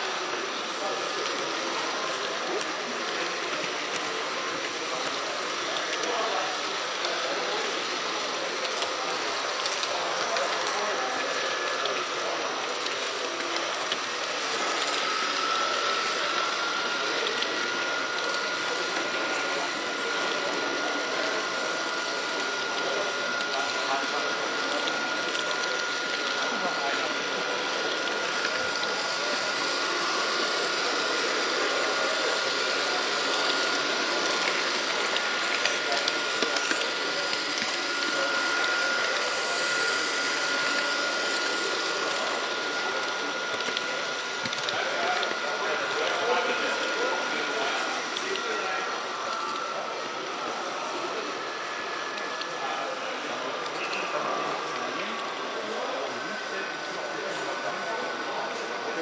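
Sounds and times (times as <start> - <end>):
hall chatter: 0.0 - 59.0
model train motor whir: 0.0 - 59.0.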